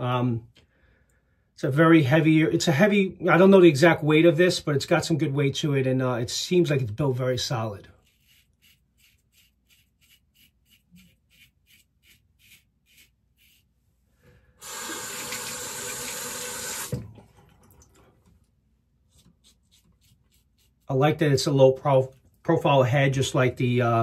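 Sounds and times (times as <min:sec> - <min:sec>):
razor scraping stubble: 0:07.9 - 0:13.7, 0:19.1 - 0:21.0
tap running: 0:14.6 - 0:18.4.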